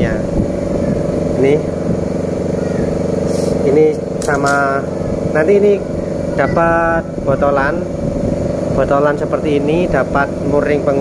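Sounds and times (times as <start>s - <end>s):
motor running steadily: 0.0s - 11.0s.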